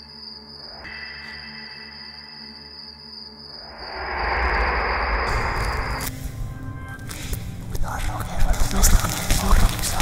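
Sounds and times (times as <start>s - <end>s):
deep rumble: 3.6s - 8.0s
loud rushing noise: 3.7s - 6.2s.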